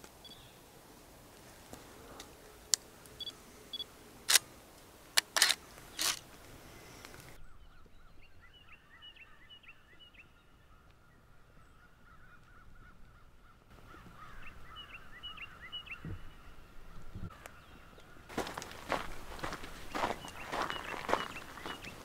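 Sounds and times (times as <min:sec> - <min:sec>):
birds chirping: 0:00.0 - 0:00.8, 0:05.1 - 0:22.0.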